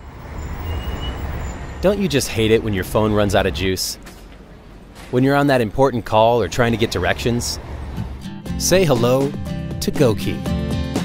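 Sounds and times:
traffic rumble: 0.0s - 9.3s.

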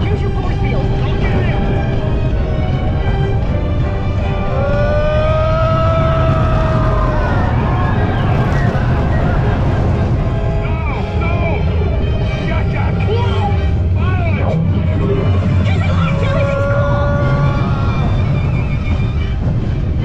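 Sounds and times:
roller coaster rumbling on track: 0.0s - 20.0s
wind buffeting microphone: 0.0s - 20.0s
riders screaming: 4.4s - 10.0s, 16.1s - 18.4s.

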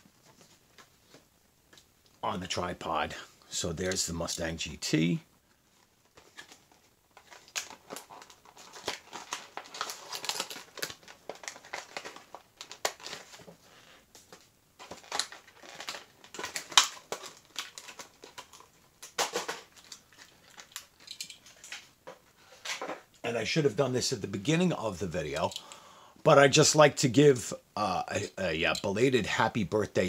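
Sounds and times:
plastic packaging crinkling: 6.0s - 23.1s.

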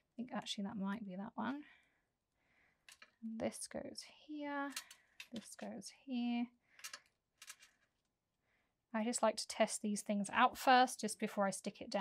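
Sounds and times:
woman speaking: 0.2s - 1.8s, 3.2s - 6.5s, 9.0s - 12.0s.

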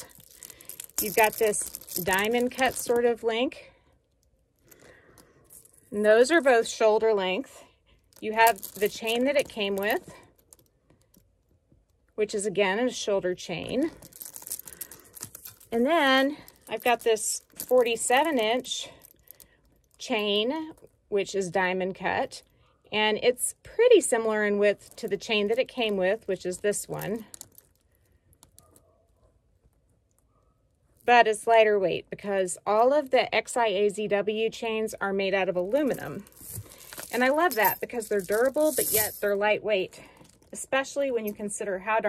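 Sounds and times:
metal chain strap clicks: 0.0s - 3.1s, 8.1s - 11.3s, 14.0s - 15.8s, 16.4s - 20.0s, 26.8s - 28.9s, 35.9s - 39.4s.

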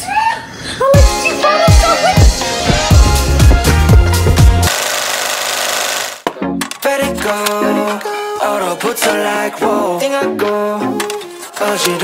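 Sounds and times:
music: 0.8s - 4.7s, 6.3s - 12.0s
film projector clattering: 4.7s - 6.2s.

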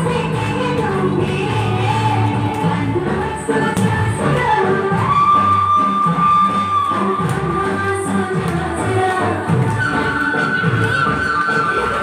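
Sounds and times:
singing over a beat: 0.0s - 12.0s.

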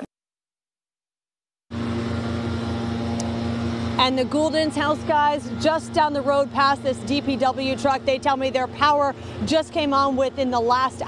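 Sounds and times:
engine idling: 1.7s - 11.0s.

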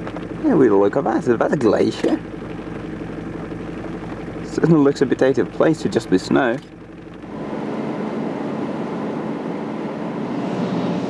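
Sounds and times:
van engine humming: 0.0s - 11.0s.

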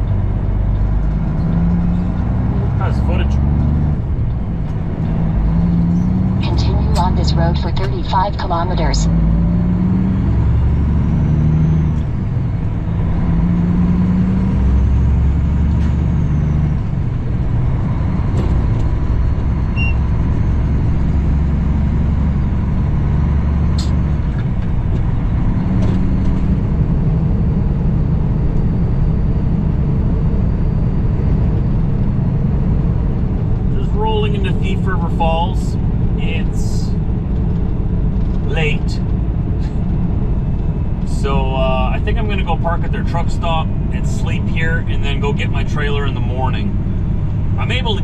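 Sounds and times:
diesel truck engine droning: 0.0s - 48.0s
road noise: 0.0s - 48.0s.

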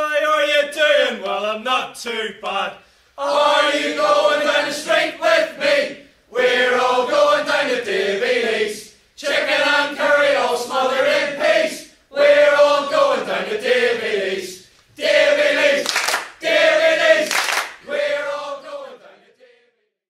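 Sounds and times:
group singing a chant: 3.2s - 19.9s.

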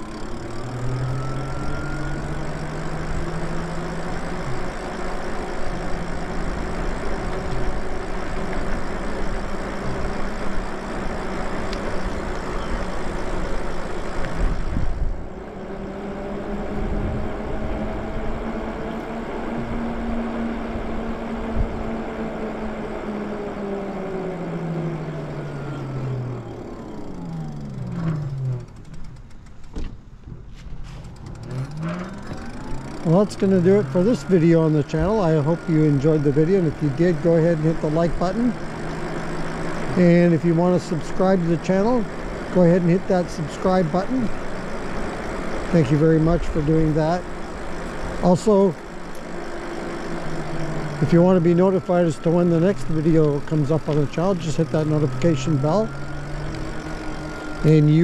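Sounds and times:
electric bike motor whine: 0.0s - 30.2s, 30.8s - 58.0s
road and wind noise: 0.0s - 58.0s.

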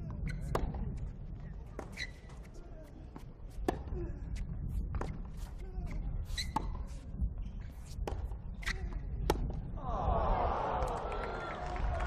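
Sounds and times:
tennis ball struck by racket: 0.4s - 0.9s, 3.6s - 3.9s, 4.9s - 5.5s, 7.9s - 9.6s.

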